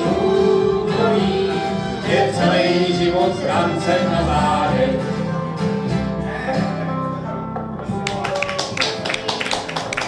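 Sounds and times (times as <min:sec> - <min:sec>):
audience clapping: 0:07.8 - 0:10.0.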